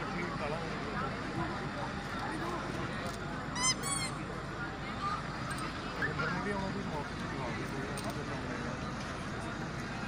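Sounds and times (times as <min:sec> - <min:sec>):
crowd chatter: 0:00.0 - 0:10.0
high-pitched honking squeaks: 0:03.6 - 0:04.2.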